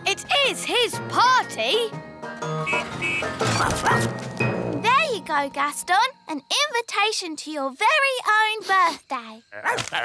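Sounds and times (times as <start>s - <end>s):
light background music: 0.0s - 7.1s
cartoon dog-like barks and yips: 9.6s - 10.0s.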